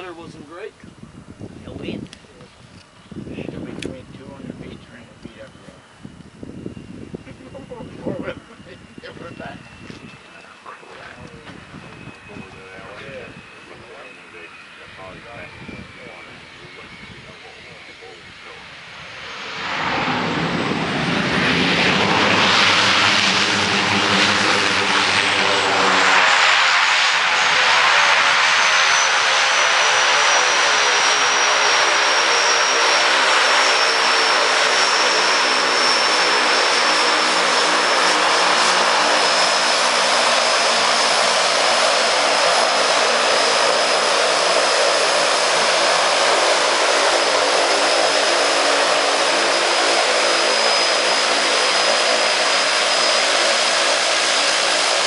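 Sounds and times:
high turbine whine: 0:00.0 - 0:55.0
turboprop plane landing and taxiing: 0:00.0 - 0:55.0.

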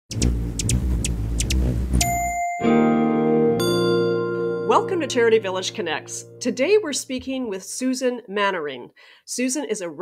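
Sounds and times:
sharp high ticks: 0:00.1 - 0:02.2
chime-like tones: 0:02.0 - 0:03.0, 0:03.6 - 0:06.8.

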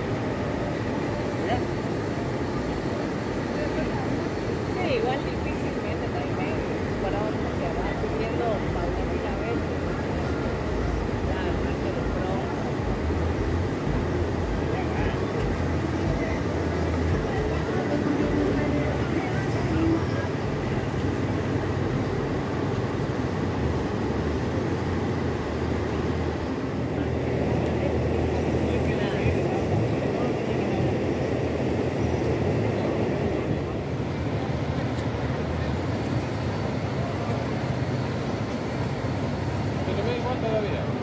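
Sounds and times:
river rushing: 0:00.0 - 0:41.0.

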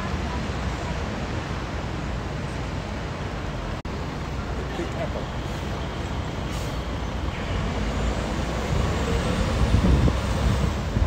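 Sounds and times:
bus engine running: 0:00.0 - 0:11.0
street traffic: 0:00.0 - 0:11.0.

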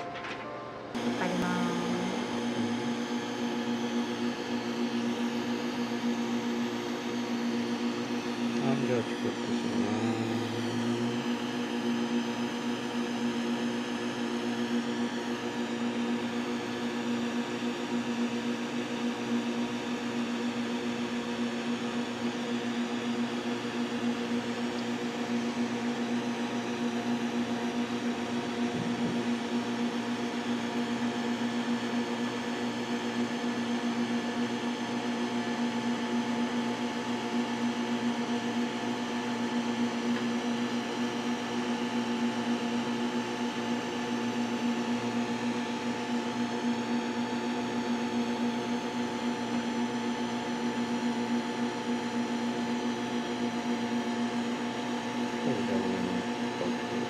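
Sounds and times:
electrical machine hum: 0:00.0 - 0:57.0.

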